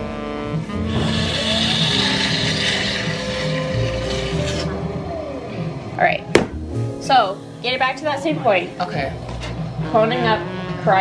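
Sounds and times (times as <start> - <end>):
background music: 0.0 - 11.0
potter's wheel spinning: 0.9 - 4.7.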